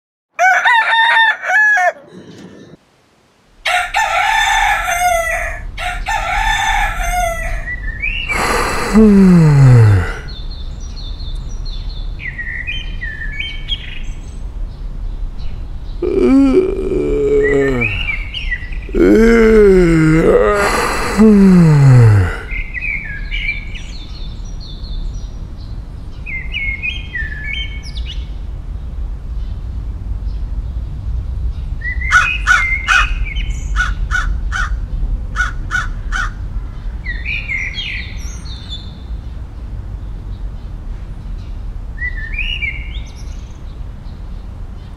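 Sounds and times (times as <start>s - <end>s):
rooster crowing: 0.4s - 2.7s, 3.6s - 7.7s
birds chirping: 1.9s - 2.8s, 15.8s - 25.3s
person sighing: 8.3s - 10.3s, 16.0s - 18.2s, 18.9s - 22.5s.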